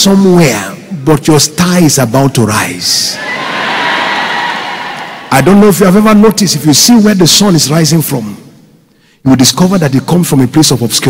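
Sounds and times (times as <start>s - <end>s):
congregation cheering and shouting: 3.1s - 6.1s.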